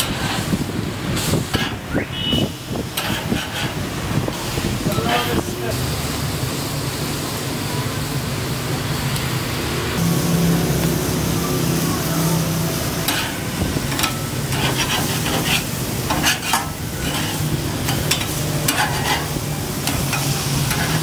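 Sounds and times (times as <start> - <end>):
metal spatula scraping a grate: 0.0 - 0.6, 2.9 - 3.8, 13.0 - 21.0
burger patties sizzling on a grill: 0.0 - 2.0, 2.6 - 21.0.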